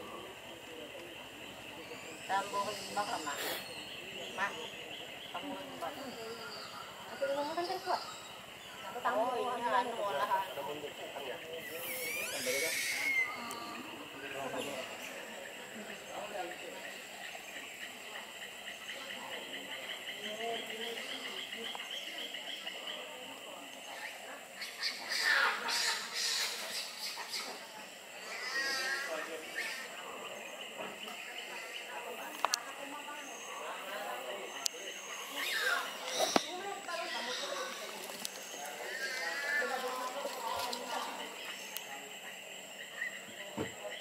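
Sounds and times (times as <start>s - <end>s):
insects chorus pulsing: 0.0s - 44.0s
murmur of voices: 0.0s - 44.0s.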